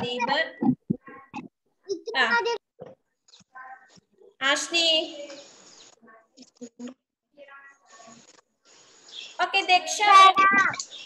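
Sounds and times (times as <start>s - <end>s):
soft voice fragments: 0.0s - 4.4s.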